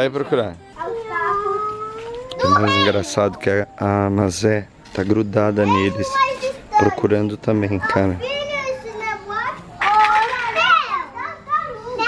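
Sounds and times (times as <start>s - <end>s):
young children calling and chattering: 0.0s - 12.0s.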